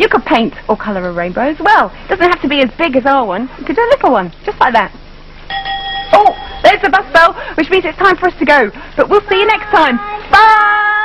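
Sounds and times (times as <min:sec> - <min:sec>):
bus bell ding: 0:05.5 - 0:06.7.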